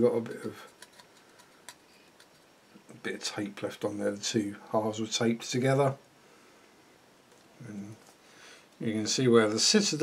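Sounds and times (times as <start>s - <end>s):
plastic model being handled: 0.4s - 2.5s.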